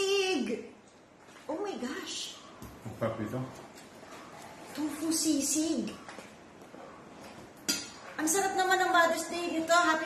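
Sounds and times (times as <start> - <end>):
tableware clink: 7.6 - 8.0.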